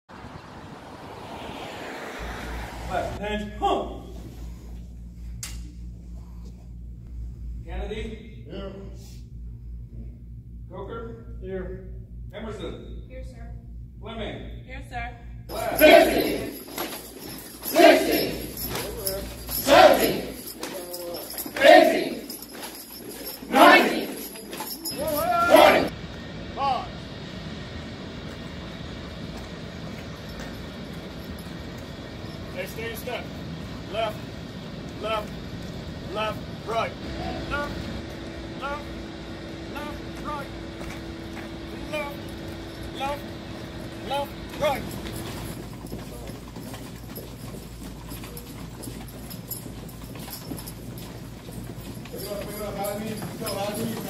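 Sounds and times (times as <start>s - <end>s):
wind buffeting microphone: 0.1s - 3.2s
low outdoor rumble: 0.1s - 54.0s
person shouting a command: 15.5s - 16.5s, 23.5s - 24.2s, 24.9s - 25.9s, 39.7s - 40.6s, 44.0s - 44.9s.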